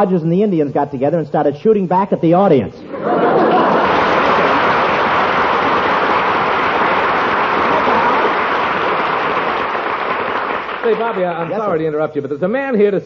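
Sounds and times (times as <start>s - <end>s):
audience laughing and applauding: 2.8s - 11.6s.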